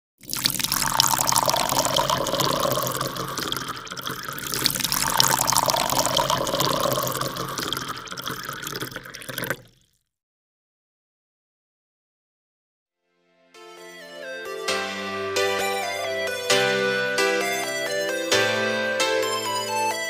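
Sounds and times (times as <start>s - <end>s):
rushing splashing water: 0.2s - 9.8s.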